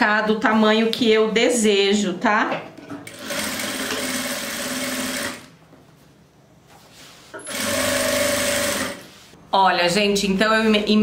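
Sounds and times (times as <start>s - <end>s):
sewing machine stitching: 3.1s - 5.5s, 7.4s - 9.0s.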